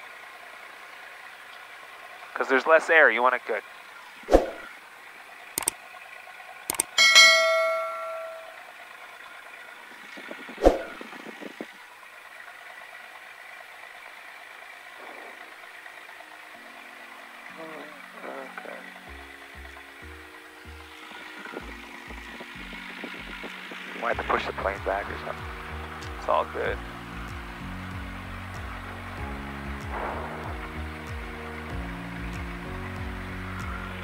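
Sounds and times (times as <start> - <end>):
mouse clicks: 6.7 - 7.0
bright bell-like ding: 7.0 - 8.6
electronic music with bass line: 21.6 - 34.0.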